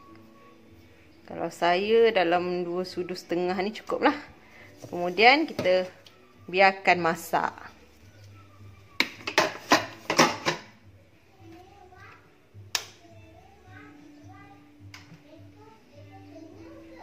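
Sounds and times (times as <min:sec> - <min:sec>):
metal pot clicks and knocks: 0:09.0 - 0:10.7.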